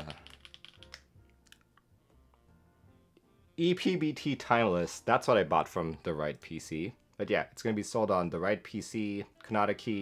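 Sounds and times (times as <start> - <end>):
typing on computer keyboard: 0.0 - 1.6
quiet background music: 0.0 - 10.0.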